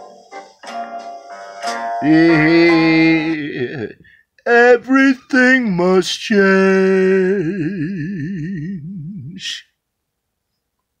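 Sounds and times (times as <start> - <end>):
man singing with vibrato: 2.0 - 9.8.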